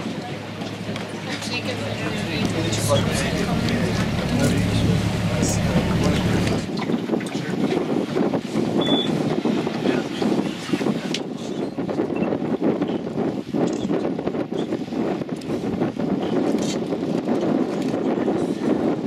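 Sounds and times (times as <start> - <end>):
boat motor humming: 0.0 - 7.2
moving water: 0.0 - 12.0
wind on microphone: 0.0 - 19.0.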